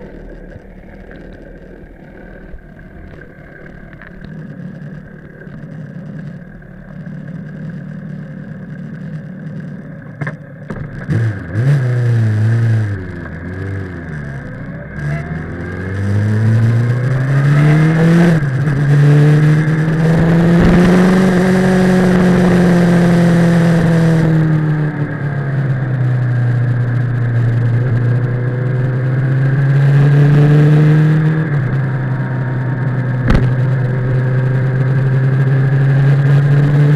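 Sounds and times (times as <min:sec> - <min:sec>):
motorcycle engine revving: 0:00.0 - 0:36.9
sharp click: 0:33.2 - 0:33.8.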